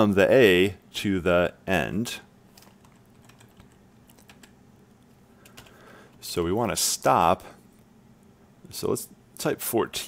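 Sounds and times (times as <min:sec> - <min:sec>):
computer keyboard keystrokes: 0:02.6 - 0:04.6, 0:05.4 - 0:05.8.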